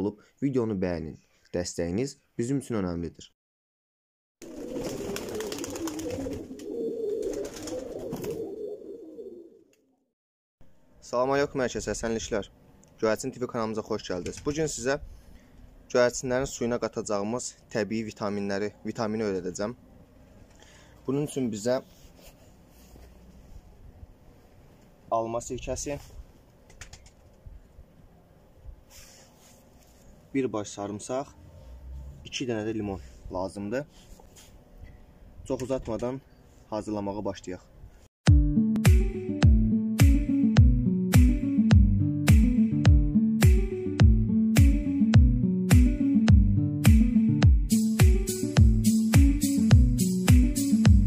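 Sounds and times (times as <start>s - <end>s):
pigeons cooing: 4.4s - 9.7s
short rustle: 21.8s - 23.8s, 28.8s - 30.3s, 33.9s - 35.0s.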